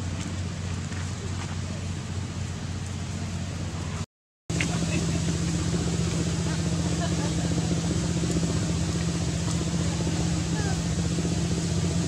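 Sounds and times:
constant low hum: 0.0 - 12.0.

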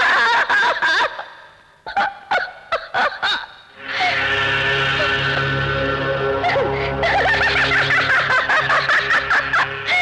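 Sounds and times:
woman laughing high-pitched: 6.4 - 10.0.

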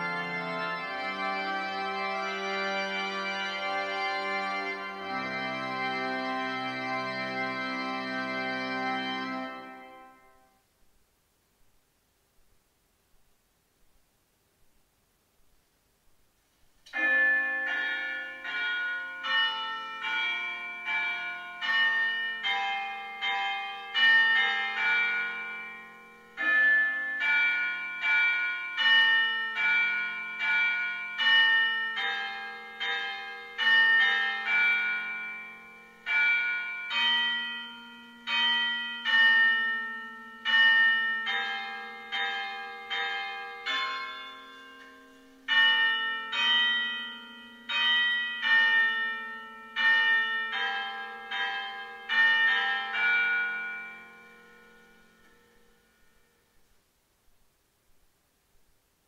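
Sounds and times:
church bells ringing: 0.0 - 10.6, 16.9 - 56.7.

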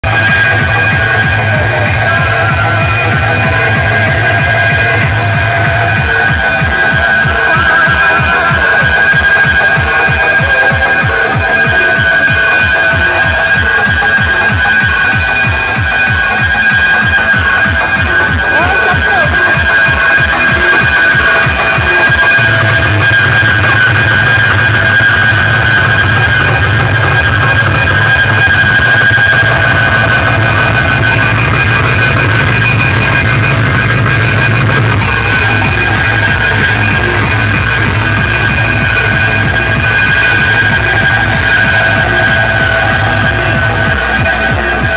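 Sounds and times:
loud music from sound system: 0.0 - 44.9
falling bass sweep: 22.4 - 44.9.

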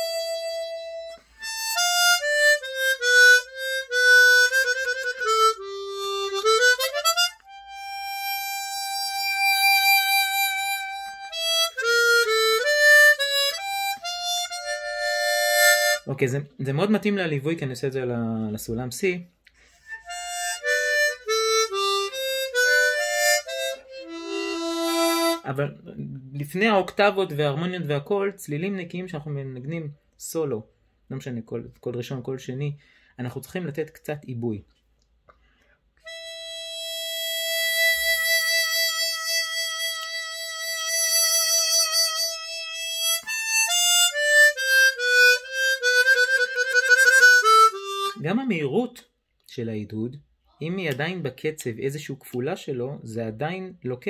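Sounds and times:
harmonica melody: 0.0 - 16.3, 19.6 - 25.7, 36.0 - 48.6.

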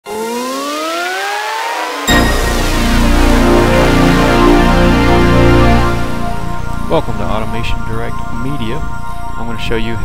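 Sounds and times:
synthesized rising sweep: 0.1 - 8.7.

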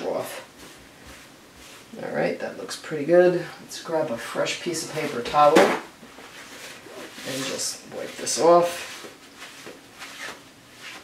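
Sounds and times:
paper towel rustling: 0.0 - 2.2, 4.1 - 11.0.

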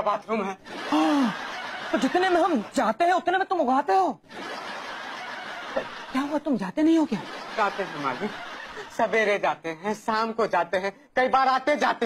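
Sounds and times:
group laughing softly: 0.6 - 2.2.

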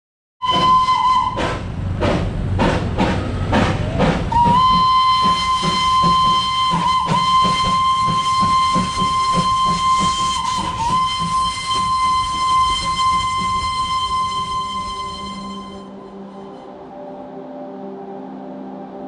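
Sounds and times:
steam locomotive whistle: 0.4 - 1.7, 3.1 - 17.0
steam hiss: 0.4 - 15.8.

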